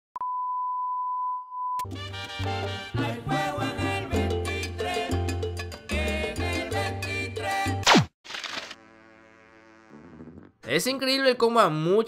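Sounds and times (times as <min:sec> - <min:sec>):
steady test tone beep: 0:00.2 - 0:01.8
music: 0:01.8 - 0:07.8.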